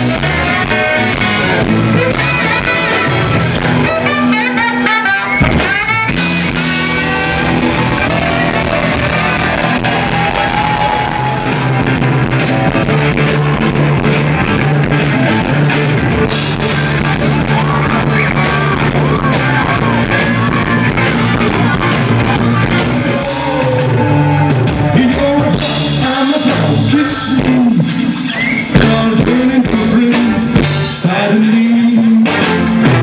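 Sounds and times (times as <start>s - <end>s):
trumpet: 0.0s - 11.6s
saxophone: 0.0s - 11.8s
drums: 0.0s - 33.0s
electric guitar: 0.0s - 33.0s.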